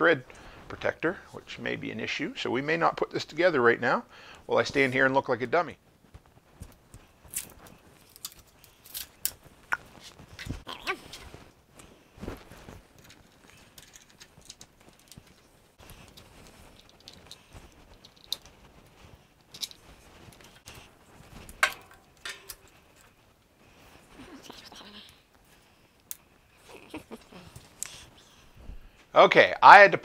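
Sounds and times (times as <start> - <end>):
plastic and metal parts clicking: 13.0 - 15.4.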